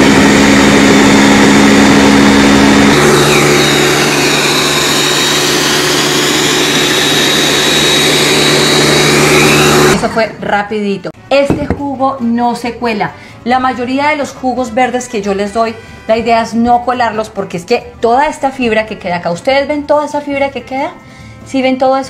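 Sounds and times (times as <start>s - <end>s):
blender running at high speed: 0.0s - 10.0s.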